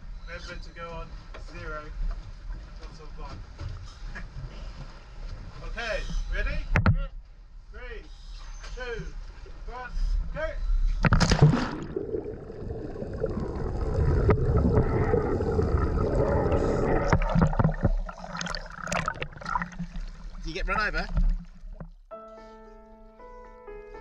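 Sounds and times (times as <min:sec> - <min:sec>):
diver splashing into water: 0:11.0 - 0:20.4
choppy splashing: 0:11.0 - 0:21.9
water gurgling and bubbles underwater: 0:11.0 - 0:22.1.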